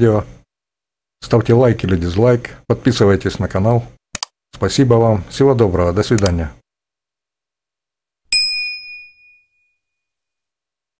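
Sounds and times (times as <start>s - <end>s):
bright bell ding: 8.3s - 10.1s.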